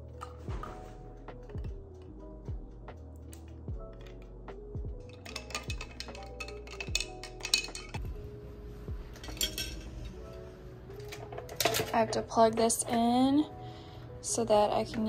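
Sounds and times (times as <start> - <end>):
lo-fi music with steady beat: 0.0 - 15.0
ice clinking in glass: 5.1 - 8.0, 9.2 - 9.9.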